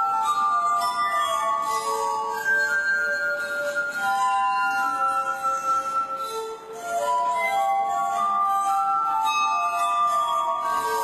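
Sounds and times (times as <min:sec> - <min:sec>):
glass harp melody: 0:00.0 - 0:11.0.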